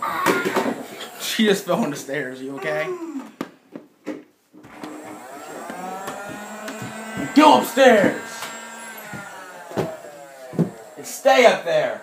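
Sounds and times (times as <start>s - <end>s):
motor-like hum: 4.7s - 12.0s.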